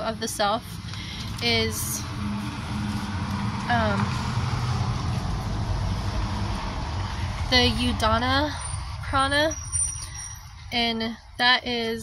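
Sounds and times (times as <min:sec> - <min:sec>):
low rumble: 0:00.7 - 0:11.4.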